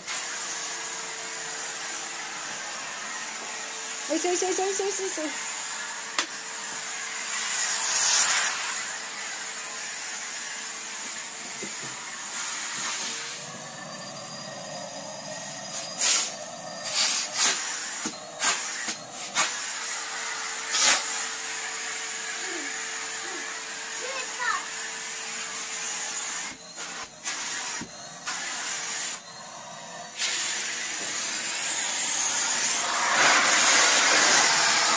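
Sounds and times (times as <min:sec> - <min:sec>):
vacuum cleaner running: 0:00.0 - 0:34.9.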